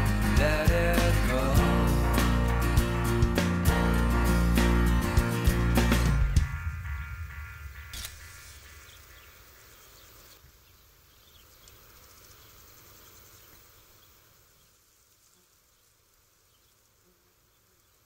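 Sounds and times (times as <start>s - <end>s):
guitar music: 0.0s - 8.4s
insect chirps: 6.6s - 18.0s.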